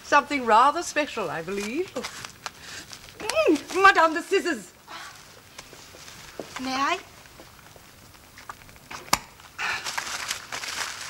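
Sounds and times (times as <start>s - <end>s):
wrapping paper rustling and tearing: 0.2s - 11.0s.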